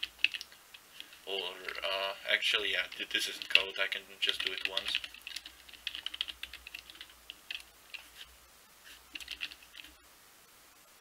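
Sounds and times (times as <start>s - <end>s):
typing on computer keyboard: 0.0s - 0.5s, 2.8s - 8.1s, 9.1s - 10.0s.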